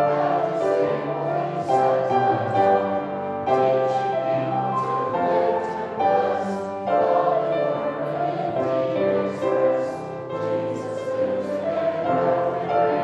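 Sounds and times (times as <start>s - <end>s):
congregation singing a hymn: 0.0s - 13.0s.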